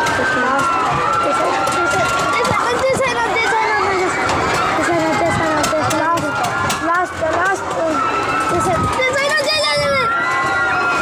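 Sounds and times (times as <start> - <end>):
riders shouting and screaming: 0.0 - 11.0.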